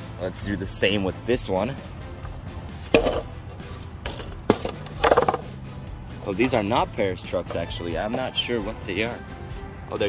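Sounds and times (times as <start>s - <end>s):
background music: 0.0s - 10.0s
longboards knocking on asphalt: 2.9s - 3.3s, 4.1s - 5.5s.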